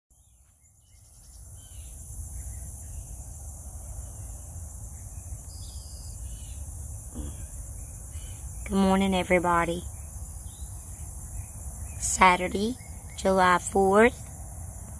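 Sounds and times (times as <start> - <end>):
faint bird chirps: 0.1 - 14.4
high-pitched insect chorus: 0.2 - 14.9.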